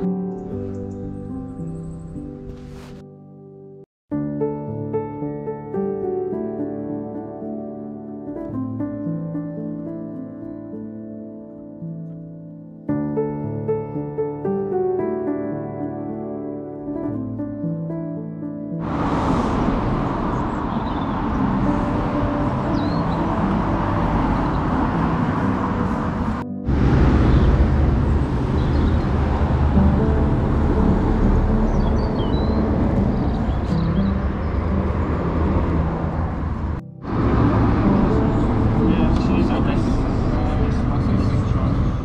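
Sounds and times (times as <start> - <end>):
low rushing noise: 18.8 - 42.0
road traffic passing: 18.8 - 42.0.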